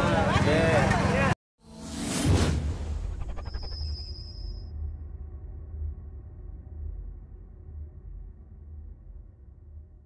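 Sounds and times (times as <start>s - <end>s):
whoosh sound effect: 1.7s - 4.4s
low rumble: 1.8s - 10.0s.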